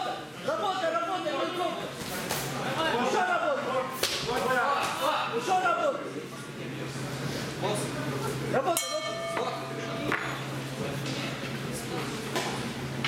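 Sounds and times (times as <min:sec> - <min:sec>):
crowd voices: 0:00.0 - 0:13.0
boxing ring bell: 0:08.8 - 0:10.6.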